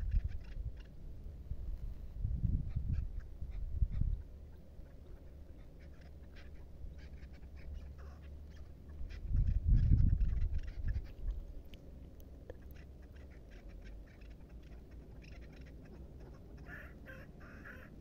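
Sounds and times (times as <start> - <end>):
wind buffeting microphone: 0.0 - 0.9, 1.5 - 4.5, 9.0 - 11.5.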